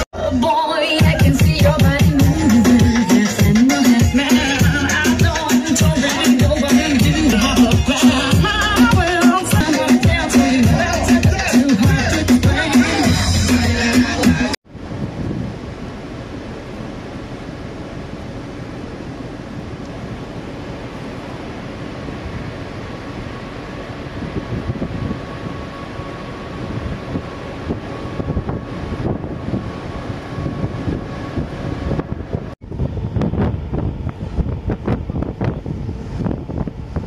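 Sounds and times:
wind buffeting microphone: 14.7 - 17.0, 21.6 - 37.0
low rumble of ship and water: 14.7 - 37.0.

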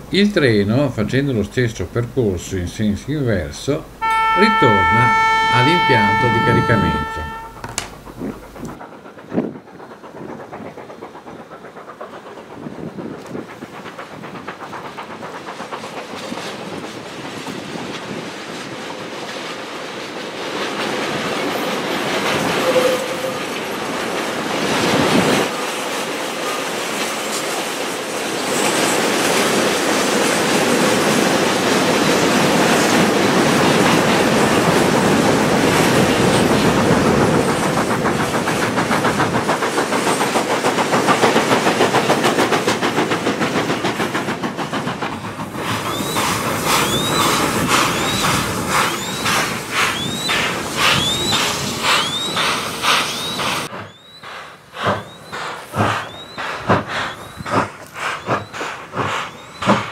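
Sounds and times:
train wheels rumbling on rails: 0.0 - 59.9
wheels clacking over rail joints: 3.2 - 59.9
wheel squeal: 22.4 - 23.7, 45.8 - 57.5.

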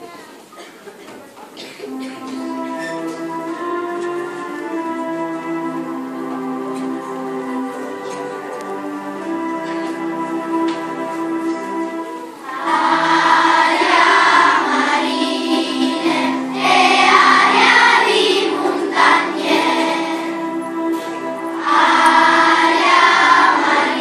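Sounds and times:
instrumental accompaniment: 1.5 - 24.0
children's choir singing: 1.6 - 24.0.

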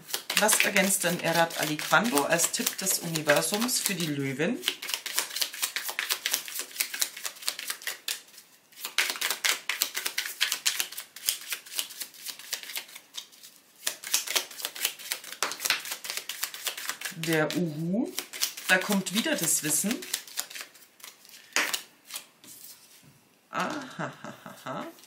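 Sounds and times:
cards being shuffled: 0.0 - 23.0.

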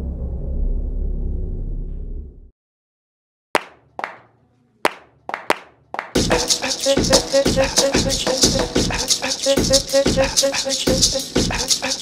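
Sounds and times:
sharp percussive hits with echo: 4.9 - 10.0.

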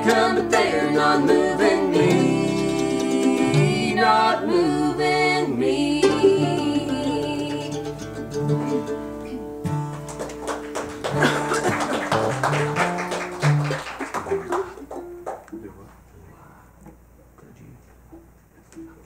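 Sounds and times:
voices singing: 0.0 - 8.2
acoustic guitar picking: 0.0 - 13.6
mandolin picking: 0.0 - 13.6.

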